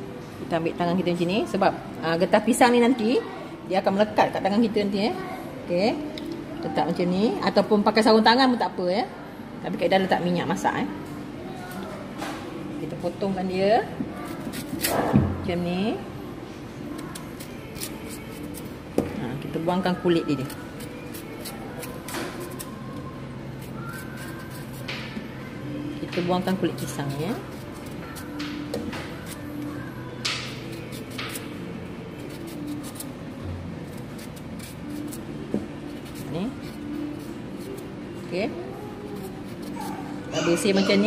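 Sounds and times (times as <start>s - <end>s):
knife scraping banana skin: 14.2s - 15.1s, 17.0s - 18.8s, 20.4s - 22.8s, 23.5s - 25.0s, 26.6s - 28.5s, 30.3s - 31.5s, 32.2s - 33.1s, 33.8s - 37.9s, 39.1s - 40.6s.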